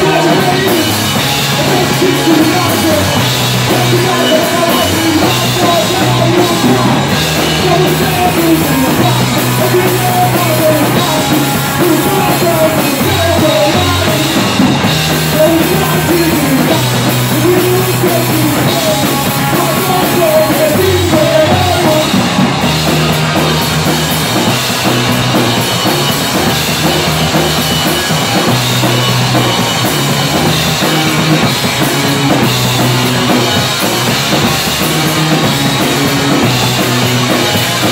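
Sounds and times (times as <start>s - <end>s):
live rock band playing: 0.0s - 37.9s.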